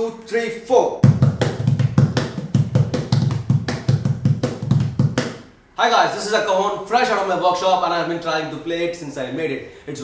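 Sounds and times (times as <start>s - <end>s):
cajon played by hand: 1.0s - 5.5s.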